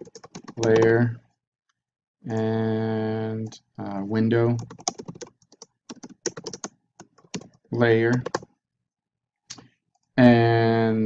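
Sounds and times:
computer keyboard typing: 0.0s - 1.0s, 4.6s - 8.5s.

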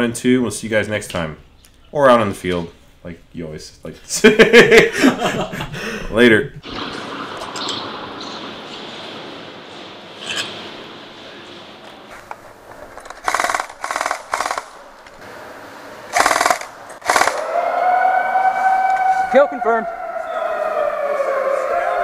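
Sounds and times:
airsoft gunfire bursts: 13.2s - 14.7s, 16.1s - 17.4s
siren tone: 17.1s - 22.0s.

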